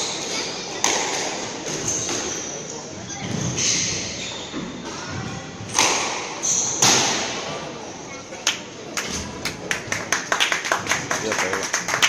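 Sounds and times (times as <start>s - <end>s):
spectators clapping: 8.5s - 12.0s.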